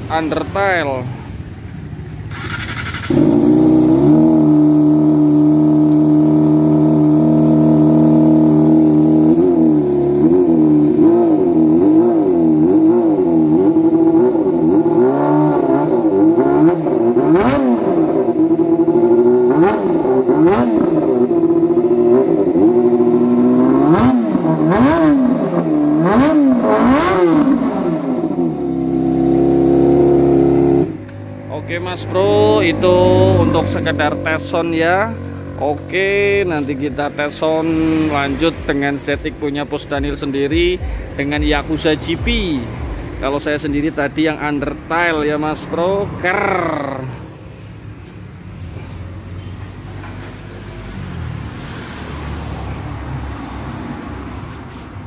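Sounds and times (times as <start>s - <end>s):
motorcycle engine idling and revving: 0.0s - 55.0s.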